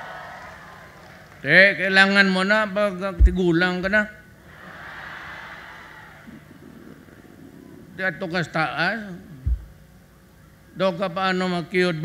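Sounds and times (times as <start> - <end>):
crowd noise: 4.4 - 8.2.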